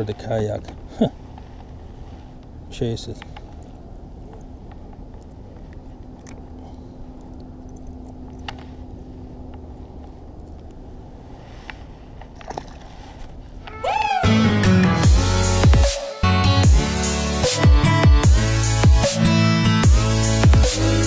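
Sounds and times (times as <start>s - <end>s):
faint steady hum: 0.0s - 14.2s
faint clicks: 3.1s - 8.7s
electronic music: 13.8s - 21.0s.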